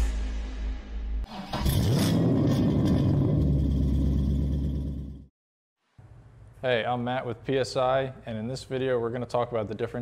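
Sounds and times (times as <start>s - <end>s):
car engine starting and revving: 1.3s - 5.2s.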